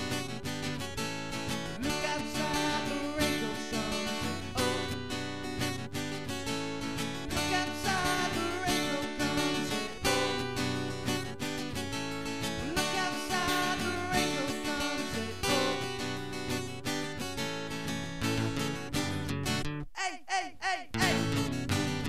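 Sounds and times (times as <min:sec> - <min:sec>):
acoustic guitars strummed fast: 0:00.0 - 0:19.7, 0:21.0 - 0:22.0.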